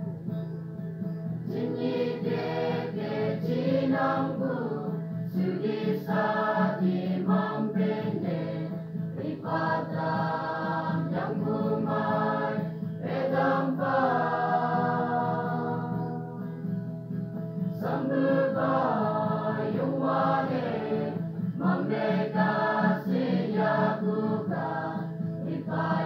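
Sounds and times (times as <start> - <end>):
mixed choir singing: 1.5 - 16.5, 17.7 - 26.0.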